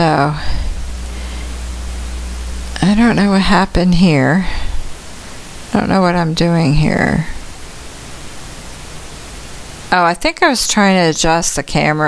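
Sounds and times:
recording static hiss: 0.0 - 12.0.

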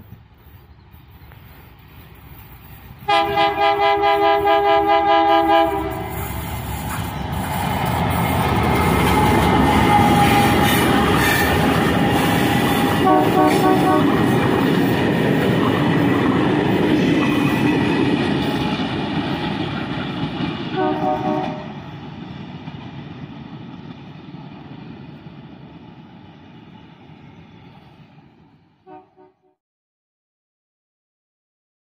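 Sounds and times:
train rumbling over rails: 0.0 - 29.3
train horn toots: 3.0 - 7.0, 9.0 - 14.4, 20.7 - 21.8, 28.8 - 29.6.

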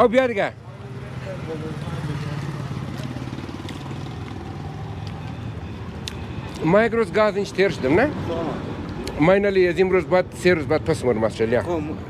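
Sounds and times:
vehicle engine humming: 0.0 - 9.0.

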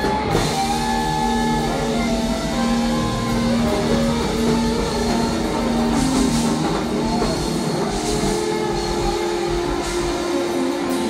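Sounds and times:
live rock band playing: 0.0 - 11.0
sustained electric guitar notes: 0.0 - 11.0.

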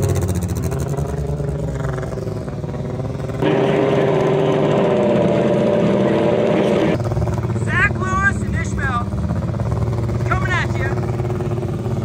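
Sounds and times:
car engine running: 0.0 - 12.0
low engine drone: 0.0 - 12.0
voices: 3.4 - 9.4, 10.0 - 11.1.

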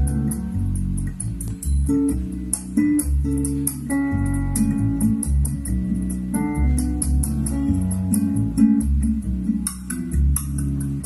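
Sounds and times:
cymbal ticking: 0.0 - 11.0
guitar music over loudspeakers: 0.0 - 11.0.

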